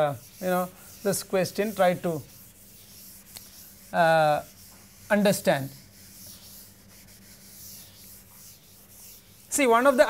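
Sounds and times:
eraser rubbing on chalkboard: 0:00.0 - 0:10.0
faint steady hum: 0:00.0 - 0:10.0.

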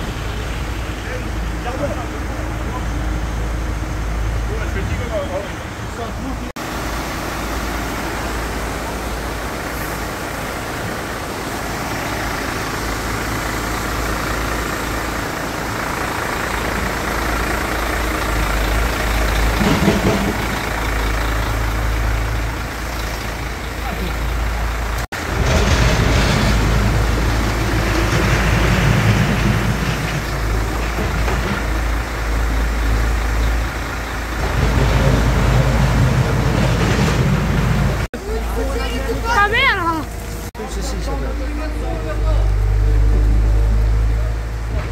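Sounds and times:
heavy vehicle engine running: 0:00.0 - 0:44.9.

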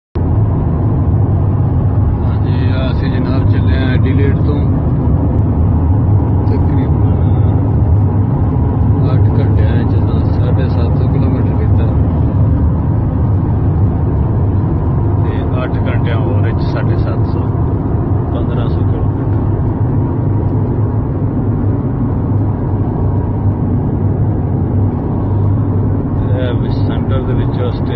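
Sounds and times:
car interior road rumble: 0:00.2 - 0:27.9.

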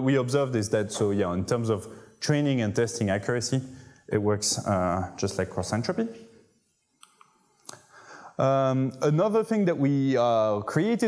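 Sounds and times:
person speaking: 0:00.0 - 0:06.2, 0:07.7 - 0:11.0.

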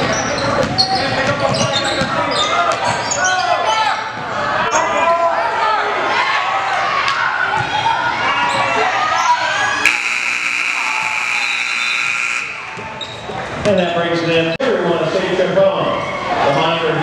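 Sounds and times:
players and crowd voices: 0:00.0 - 0:17.0
scoreboard buzzer: 0:09.9 - 0:12.8.

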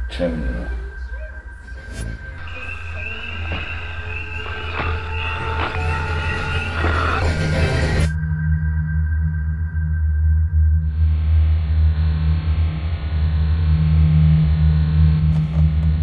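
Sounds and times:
thin wavering high tone: 0:00.0 - 0:10.0
low hum: 0:00.0 - 0:15.1
deep steady drone: 0:00.0 - 0:15.3.

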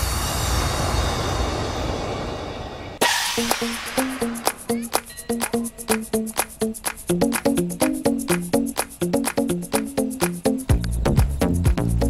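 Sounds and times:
hiss-like cymbal wash in music: 0:03.0 - 0:04.4.

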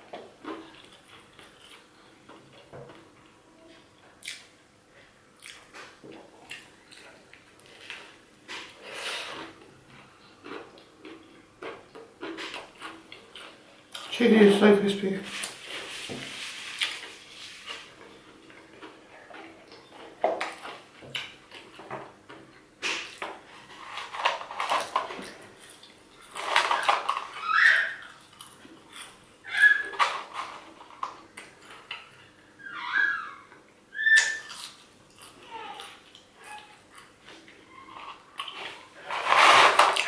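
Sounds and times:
crunching and chewing food: 0:00.0 - 0:14.2, 0:15.3 - 0:32.4, 0:34.2 - 0:40.0
high-pitched vocal squeals: 0:27.3 - 0:28.1, 0:29.5 - 0:30.0, 0:32.6 - 0:34.6.

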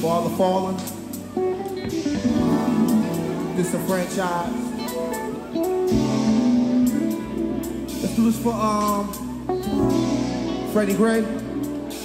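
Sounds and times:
live soul band music: 0:00.0 - 0:12.0
guitar notes: 0:00.8 - 0:12.0.

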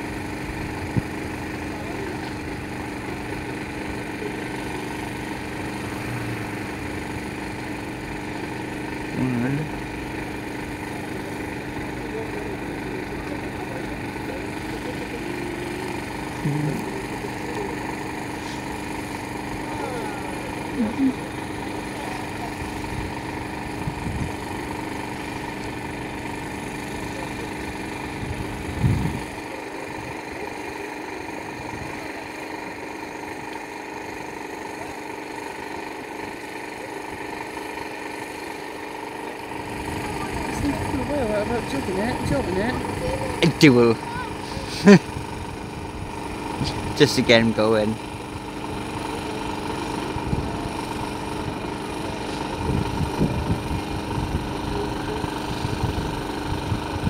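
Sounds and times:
car engine idling: 0:00.0 - 0:57.0
faint voices: 0:01.5 - 0:06.7, 0:11.0 - 0:23.2, 0:39.7 - 0:45.2, 0:54.2 - 0:56.2.

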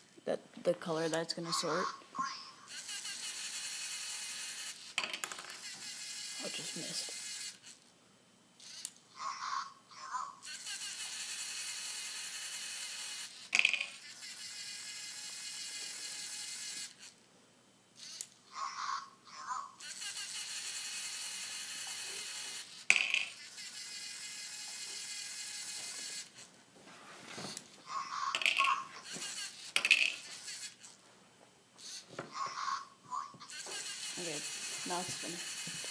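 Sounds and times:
robot speaking colour word: 0:00.9 - 0:02.6
motors whining: 0:01.0 - 0:07.8, 0:08.6 - 0:17.2, 0:18.0 - 0:26.5, 0:27.4 - 0:31.0, 0:31.8 - 0:35.9.

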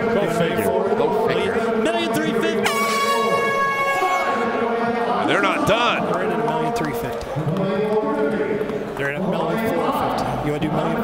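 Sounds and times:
man's voice: 0:00.0 - 0:03.5, 0:04.5 - 0:11.0
high-pitched air horn blast: 0:02.6 - 0:05.0.

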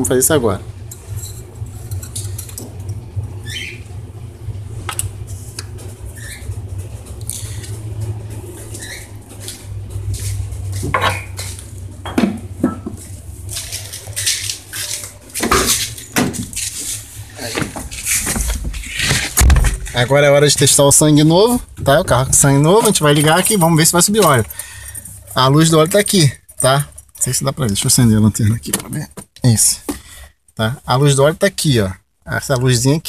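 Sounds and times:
steady low rumble: 0:00.0 - 0:14.8, 0:15.8 - 0:25.8.

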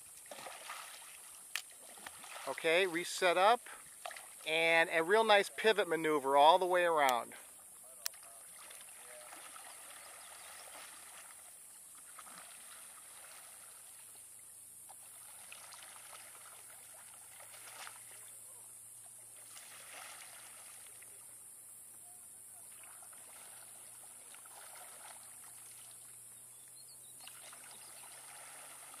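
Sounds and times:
paddle strokes in water: 0:00.0 - 0:05.4, 0:07.2 - 0:21.4, 0:22.4 - 0:29.0
steady high hiss: 0:00.0 - 0:08.2, 0:10.0 - 0:22.7.

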